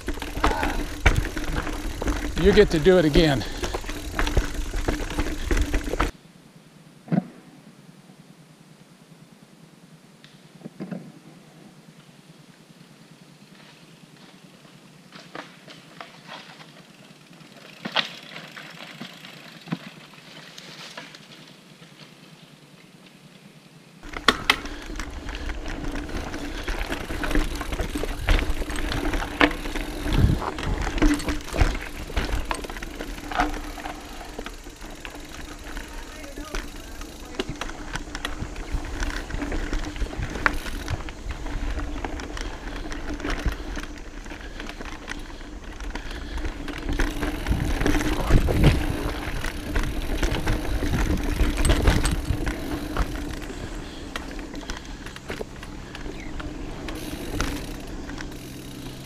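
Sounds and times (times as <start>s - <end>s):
bike rattling over rocks: 0.0s - 6.1s, 15.1s - 22.3s, 24.0s - 59.0s.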